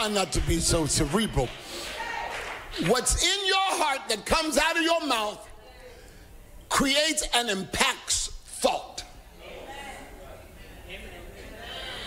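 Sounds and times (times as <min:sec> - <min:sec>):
person preaching: 0:00.0 - 0:01.6, 0:02.8 - 0:05.6, 0:06.7 - 0:09.9.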